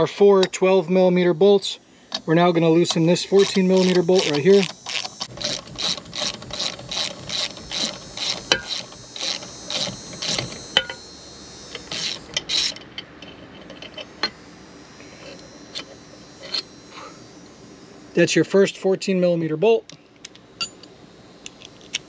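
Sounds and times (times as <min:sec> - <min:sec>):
socket ratchet clicking: 0:02.8 - 0:11.0.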